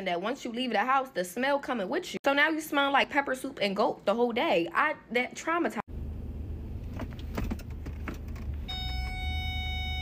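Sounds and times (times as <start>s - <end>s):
high parking sensor warning tone: 8.6s - 10.0s.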